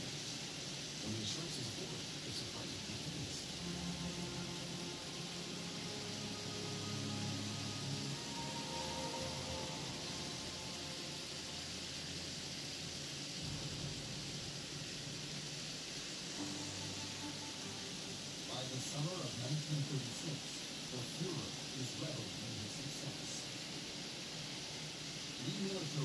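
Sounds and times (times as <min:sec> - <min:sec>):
faint music: 0:00.0 - 0:26.0
model trains running on track: 0:00.0 - 0:26.0.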